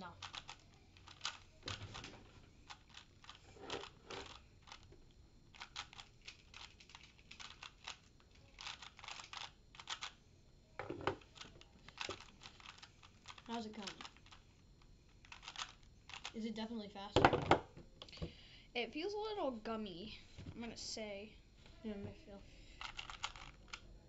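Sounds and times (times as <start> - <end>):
plastic puzzle cube clicking: 0.1 - 2.1, 2.7 - 4.9, 5.5 - 10.2, 11.1 - 14.4, 15.2 - 16.4, 22.8 - 23.9.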